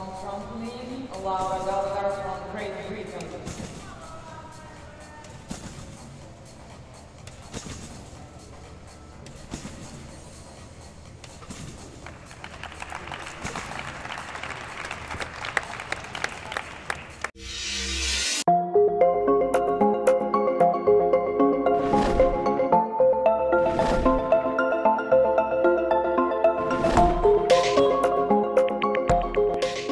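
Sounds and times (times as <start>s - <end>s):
music: 0.0s - 29.9s
crowd clapping and cheering: 12.0s - 17.4s.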